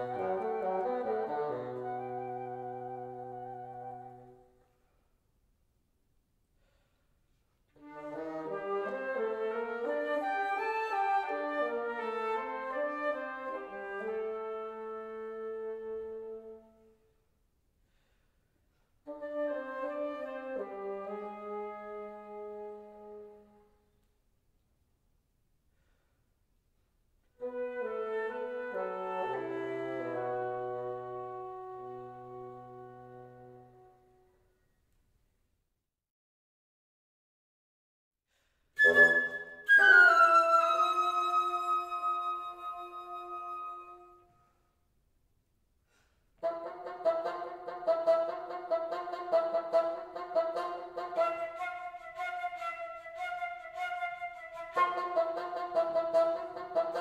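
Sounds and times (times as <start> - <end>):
bassoon: 0.0 - 4.4, 7.8 - 16.9, 19.1 - 23.8, 27.4 - 34.3, 38.8 - 44.2, 46.4 - 57.0
flute: 0.0 - 4.8, 7.8 - 17.0, 19.1 - 23.8, 27.4 - 34.6, 38.8 - 44.7, 46.4 - 57.0.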